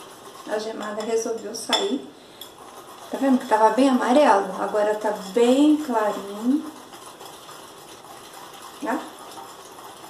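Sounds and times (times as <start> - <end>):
whisk scraping glass bowl: 0.0 - 10.0.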